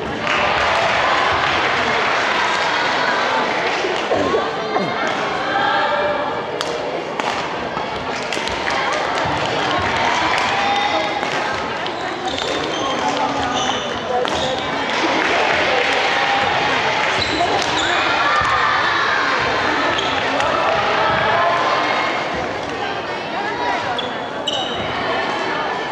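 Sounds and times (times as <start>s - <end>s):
voices in large hall: 0.0s - 25.9s.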